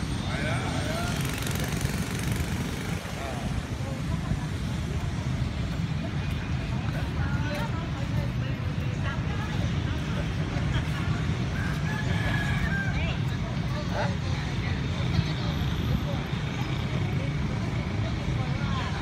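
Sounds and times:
faint voices of people: 0.0 - 19.0.

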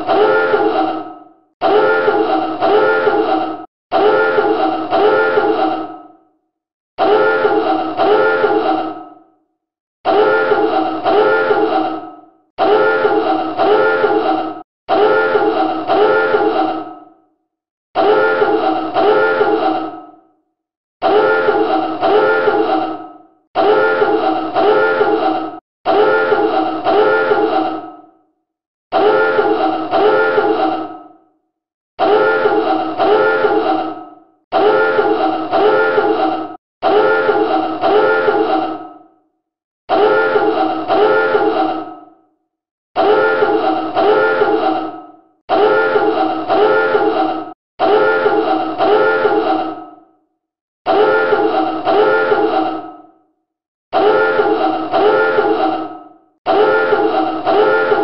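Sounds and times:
submarine dive alarm blasts: 0.0 - 0.7, 1.6 - 3.2, 3.9 - 5.6, 7.0 - 8.6, 10.1 - 11.6, 12.6 - 14.1, 14.9 - 16.4, 18.0 - 19.5, 21.1 - 22.6, 23.6 - 25.1, 25.9 - 27.4, 30.0 - 30.5, 32.0 - 33.6, 34.6 - 36.1, 36.8 - 38.4, 39.9 - 41.4, 43.0 - 44.6, 45.5 - 47.1, 47.8 - 49.4, 50.9 - 52.5, 54.0 - 55.6, 56.5 - 58.0.

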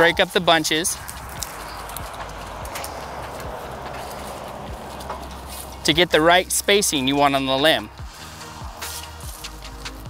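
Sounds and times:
leaves and twigs rustling: 0.0 - 10.0.

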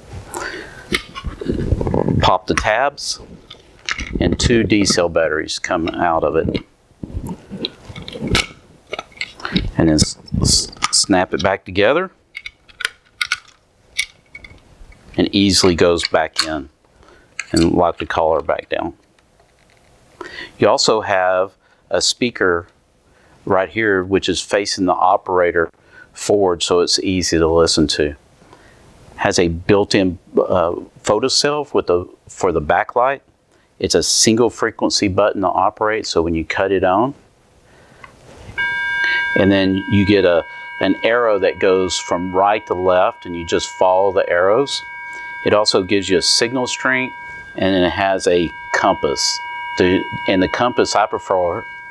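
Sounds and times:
steady electronic tone: 38.6 - 51.9.

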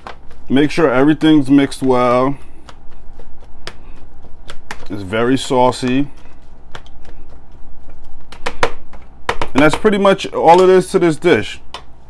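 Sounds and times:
salad rustling in container: 0.0 - 8.4.

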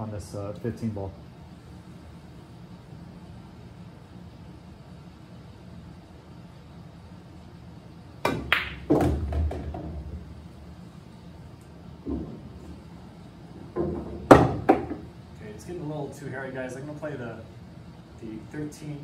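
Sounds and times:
ball dropping into pocket: 8.2 - 10.1
cue striking cue ball: 8.2 - 10.3, 13.7 - 15.1
pool balls clicking: 8.2 - 10.4, 12.0 - 12.9, 13.6 - 15.1.

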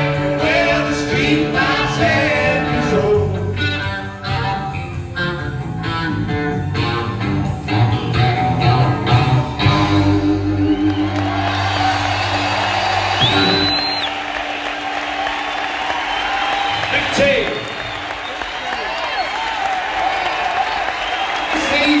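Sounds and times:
audience cheering and applauding: 9.6 - 22.0
high whistle-like tone: 10.4 - 18.5.

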